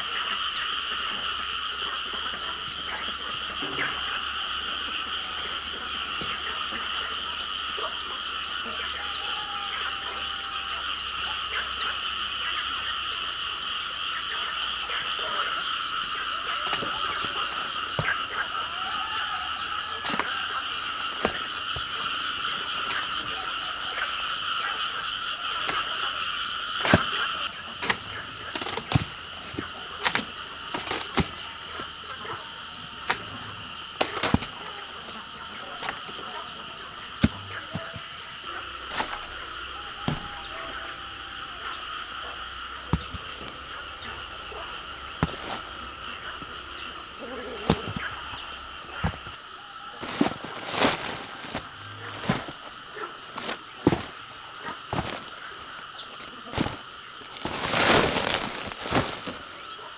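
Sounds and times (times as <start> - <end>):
frogs calling: 0.0 - 59.9.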